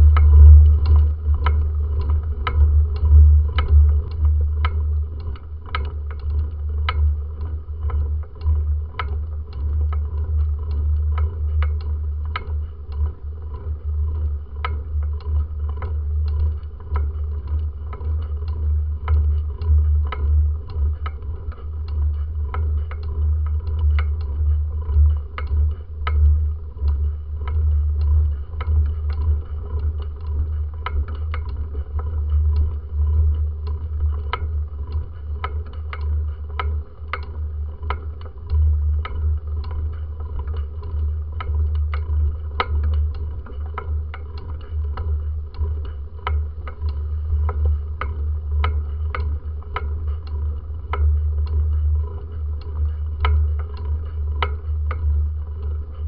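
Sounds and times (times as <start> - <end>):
wind and road rumble on microphone: 0.0 - 5.7.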